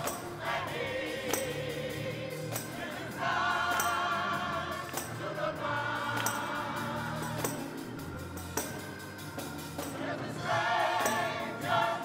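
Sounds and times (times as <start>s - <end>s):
congregation singing gospel song: 0.0s - 12.0s.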